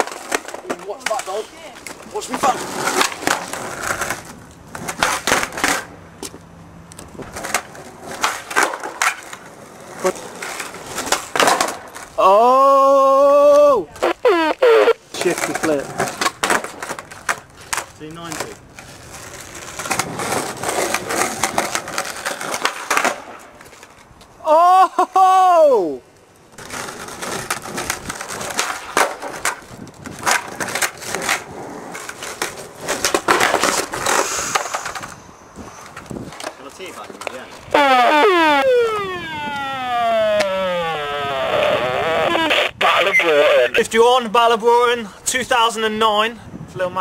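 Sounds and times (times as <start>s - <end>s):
skateboard popping and landing: 0.0s - 6.4s, 7.0s - 12.2s, 13.5s - 24.2s, 26.5s - 35.2s
skateboard wheels rolling on concrete: 0.0s - 47.0s
long falling glide: 37.7s - 42.5s
loud rising and falling tone: 37.7s - 42.8s.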